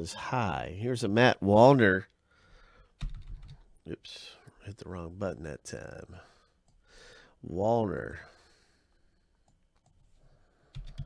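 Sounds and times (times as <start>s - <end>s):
computer keyboard keystrokes: 3.0s - 3.6s, 10.7s - 11.0s.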